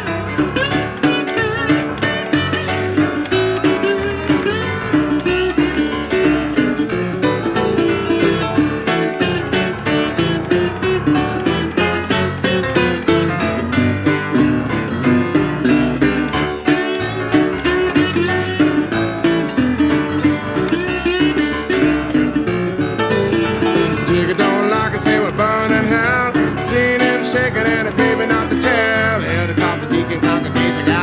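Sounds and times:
acoustic guitar picking: 0.0 - 31.0
piano: 0.0 - 31.0.

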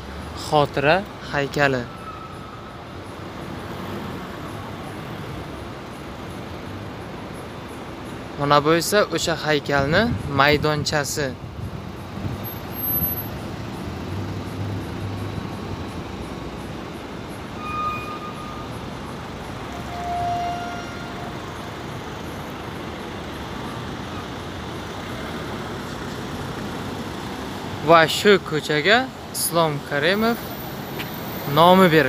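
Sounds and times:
city traffic hum: 0.0 - 32.0.

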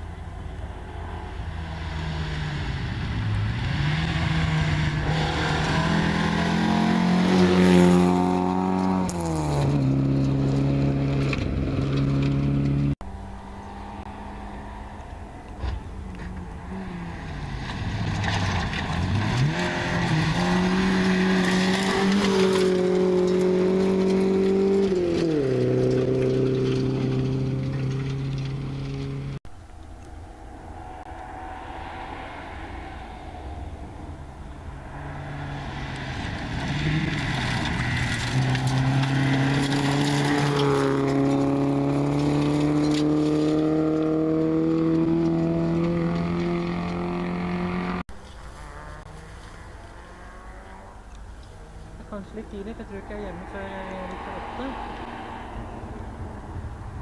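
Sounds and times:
rally car engine accelerating: 0.0 - 57.0
second car engine approaching: 0.0 - 57.0.

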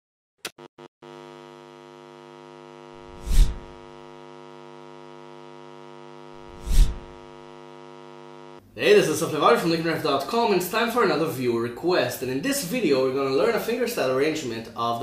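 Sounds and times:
electronic hum: 0.5 - 8.7
whooshes: 6.5 - 7.0.

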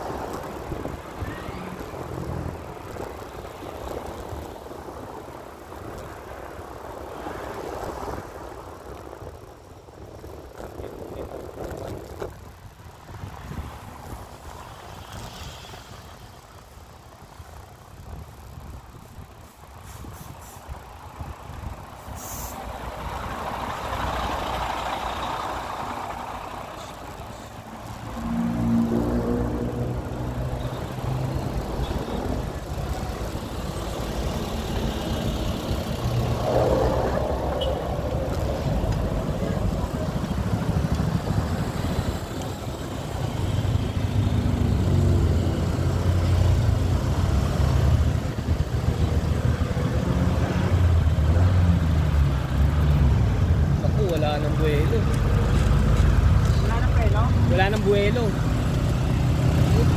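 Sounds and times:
vehicles passing: 0.0 - 59.9.

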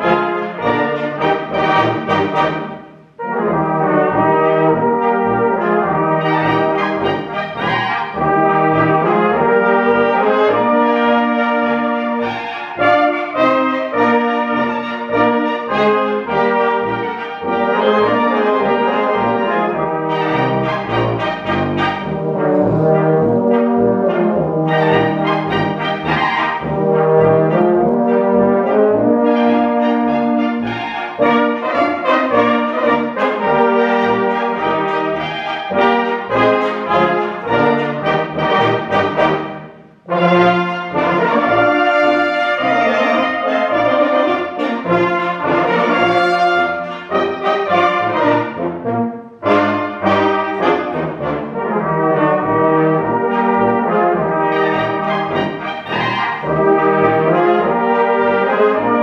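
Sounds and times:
brass band playing: 0.0 - 59.0.

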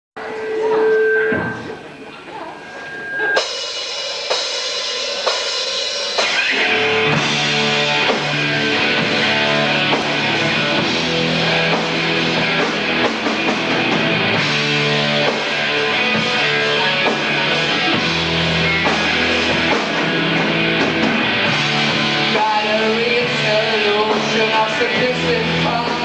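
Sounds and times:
rock band playing: 3.2 - 26.0.

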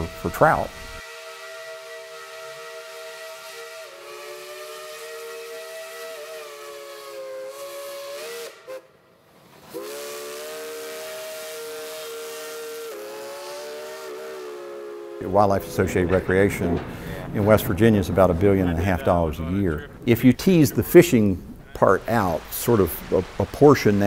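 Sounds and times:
steam hissing: 0.0 - 8.8, 9.4 - 24.0
steam locomotive whistle: 0.0 - 9.0, 9.6 - 17.7.

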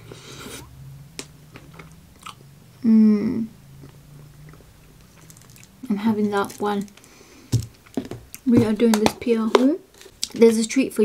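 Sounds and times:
person chewing: 1.5 - 2.4, 3.8 - 8.4
person humming mm: 2.8 - 3.6.

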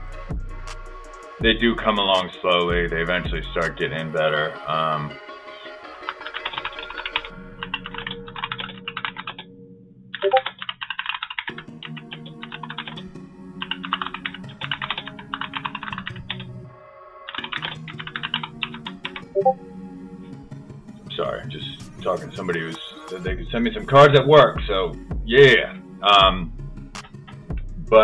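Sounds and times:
background music: 0.0 - 28.0
computer keyboard typing: 6.1 - 9.4, 10.2 - 13.0, 13.6 - 16.5, 17.3 - 19.6.

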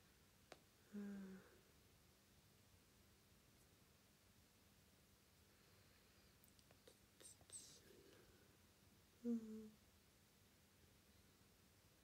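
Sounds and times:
faint whisper: 0.5 - 1.7, 5.5 - 8.6, 9.2 - 9.8
soft mouth clicks: 6.4 - 7.6.

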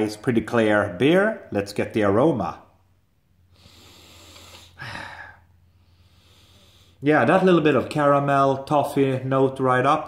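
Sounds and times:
man sniffing through nose: 3.5 - 7.0.

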